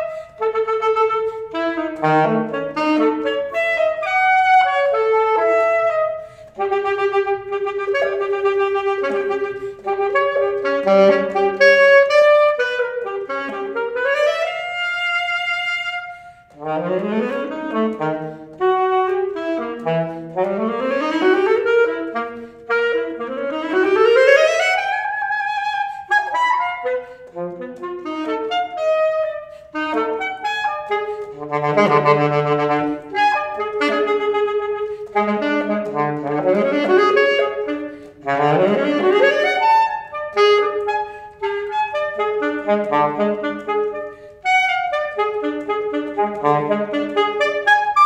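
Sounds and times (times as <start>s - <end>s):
solo alto saxophone: 0.0s - 48.0s.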